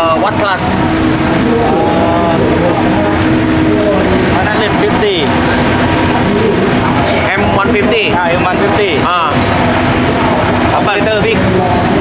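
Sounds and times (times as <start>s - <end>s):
motorcycle engines running: 0.0s - 12.0s
voices talking: 0.0s - 12.0s.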